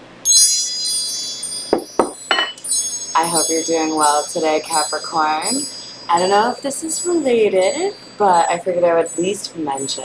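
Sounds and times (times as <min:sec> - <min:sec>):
metal chimes ringing: 0:00.2 - 0:10.0.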